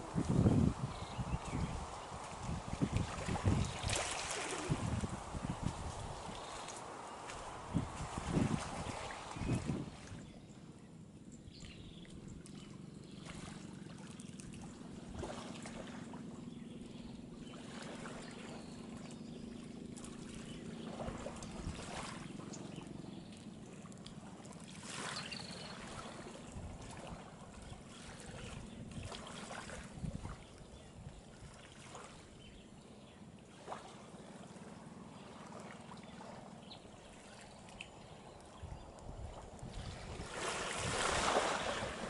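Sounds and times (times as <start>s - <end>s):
distant boat engines droning: 0.0s - 42.0s
small waves lapping: 0.0s - 42.0s.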